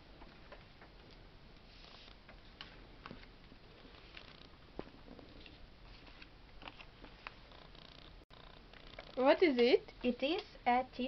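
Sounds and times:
paper cards handled on table: 5.4s - 7.7s.

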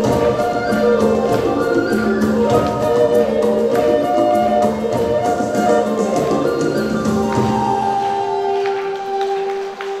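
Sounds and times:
sustained wind instrument tone: 0.0s - 10.0s.

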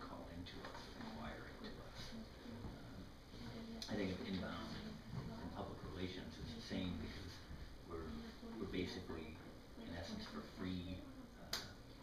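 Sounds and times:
man talking: 0.0s - 2.1s, 5.5s - 11.6s.

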